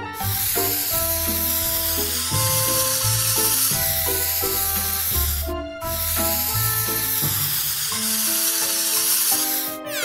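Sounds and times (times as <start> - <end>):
background music with bass line: 0.0 - 7.8
spray-paint can hissing: 0.0 - 10.0.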